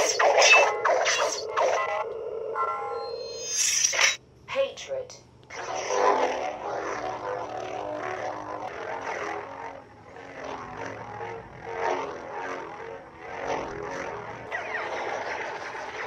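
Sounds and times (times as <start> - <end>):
lightsaber buzzing hum: 0.0 - 4.2, 5.4 - 16.0.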